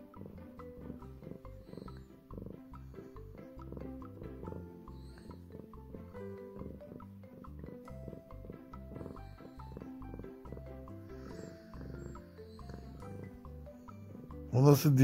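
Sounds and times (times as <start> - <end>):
cat purring: 0.0 - 15.0
soft background music: 0.0 - 15.0.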